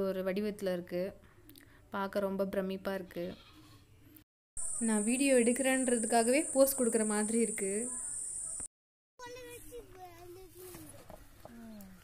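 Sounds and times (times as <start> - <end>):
woman's voice: 4.8 - 8.1.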